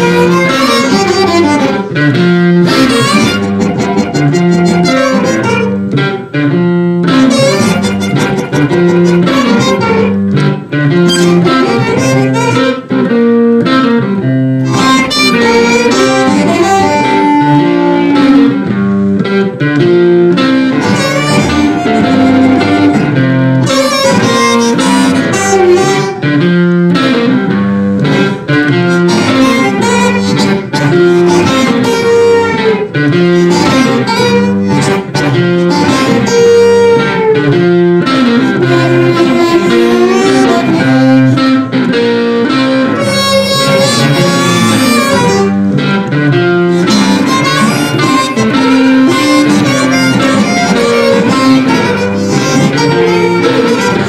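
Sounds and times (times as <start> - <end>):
amplified blues harmonica: 0.0 - 54.0
rhythm electric guitar: 0.0 - 54.0.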